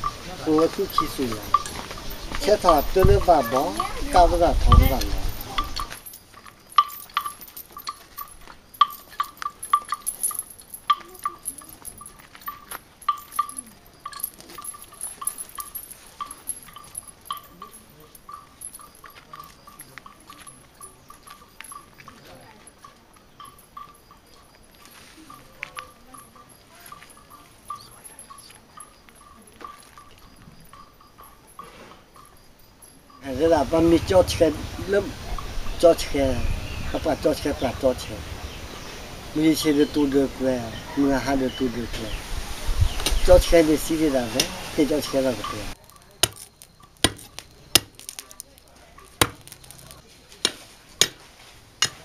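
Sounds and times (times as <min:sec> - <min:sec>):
elephant neck bells clonking: 0:00.0 - 0:52.0.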